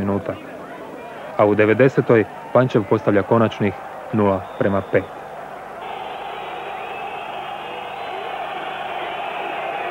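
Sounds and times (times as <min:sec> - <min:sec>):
stadium crowd voices: 0:00.0 - 0:09.9.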